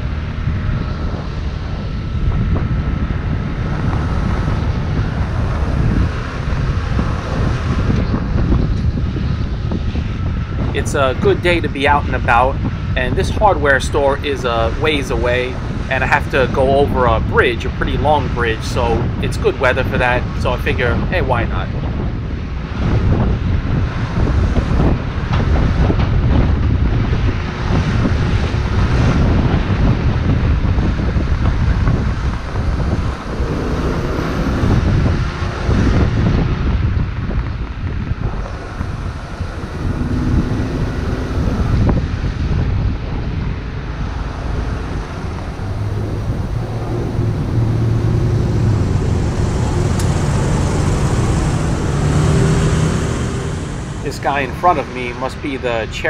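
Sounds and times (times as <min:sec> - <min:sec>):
city traffic: 0:00.0 - 0:56.0
wind rushing over microphone: 0:00.0 - 0:56.0
scooter engine hum: 0:24.1 - 0:56.0.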